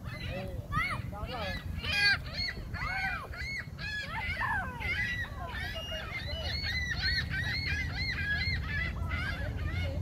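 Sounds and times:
gulls calling: 0.0s - 10.0s.

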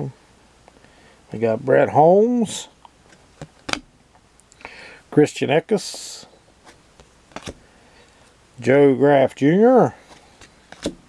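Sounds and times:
soft card rustle: 5.8s - 8.4s, 10.0s - 11.0s.

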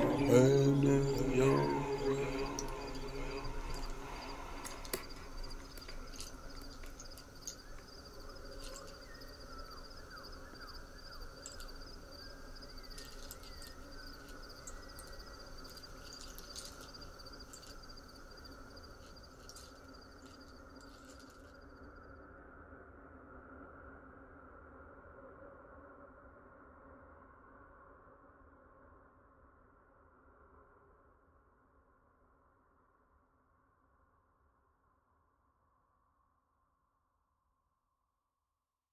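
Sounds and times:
faint steady drone: 0.0s - 21.8s
crickets chirping: 0.0s - 22.1s
faint clicks: 1.0s - 21.6s.

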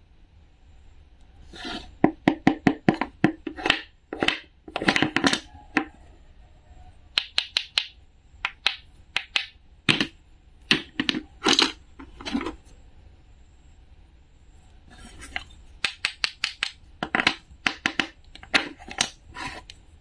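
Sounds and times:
wooden rasping scrapes: 1.4s - 2.0s, 14.9s - 15.4s, 18.8s - 19.7s
wooden toy pieces clicking: 7.1s - 10.1s, 15.8s - 19.2s.

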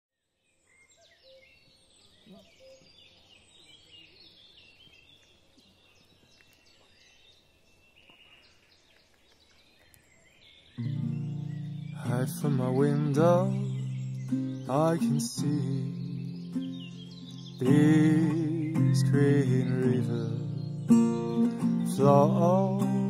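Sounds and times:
birds chirping: 0.3s - 23.0s.

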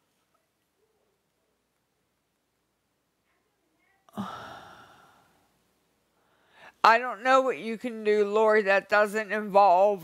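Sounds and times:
woman sighing: 4.1s - 5.5s.

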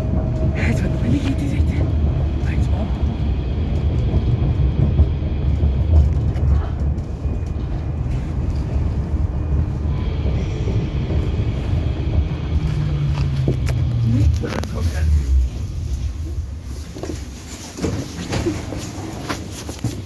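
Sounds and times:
low hum: 0.0s - 19.9s
tram wheels rumbling on track: 0.0s - 20.0s.

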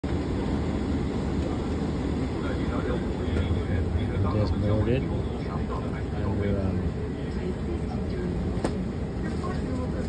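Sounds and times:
airliner cabin drone: 0.0s - 10.0s
faint voices: 1.0s - 10.0s.

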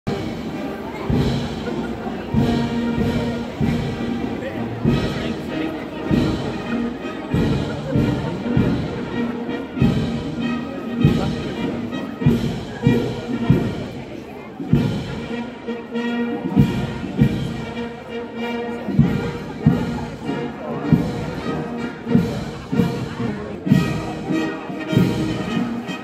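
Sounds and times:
heavy drum beats: 0.1s - 26.0s
marching brass band: 0.1s - 26.0s.

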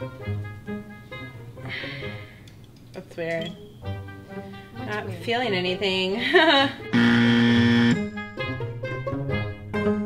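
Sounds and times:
light background music: 0.0s - 10.0s
wrong answer buzzer: 6.9s - 8.1s.

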